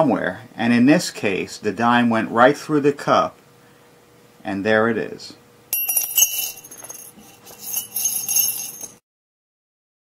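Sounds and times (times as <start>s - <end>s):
small bells jingling: 5.7s - 9.0s.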